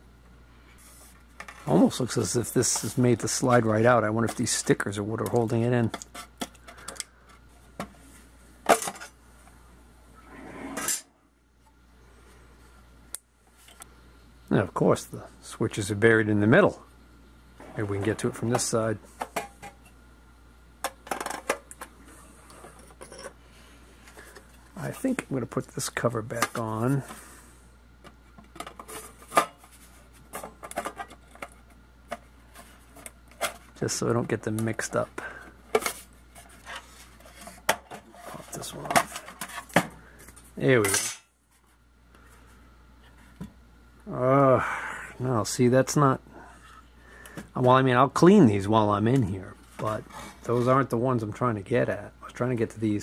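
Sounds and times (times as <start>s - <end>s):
metal scraping: 10.2s - 11.2s.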